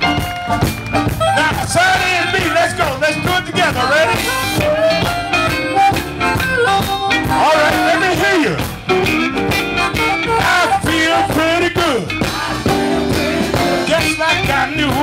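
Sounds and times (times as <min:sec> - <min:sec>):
harmonica: 0:00.0 - 0:11.8
drum beat: 0:00.0 - 0:15.0
electric guitar lead: 0:00.0 - 0:15.0.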